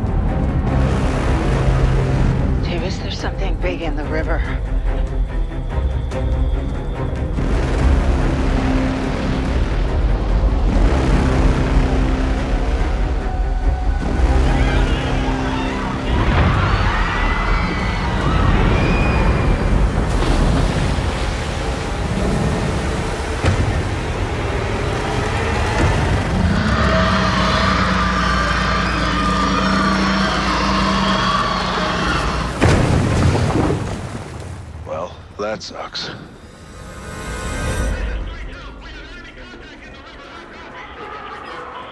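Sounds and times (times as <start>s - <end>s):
dramatic film score: 0.0s - 41.9s.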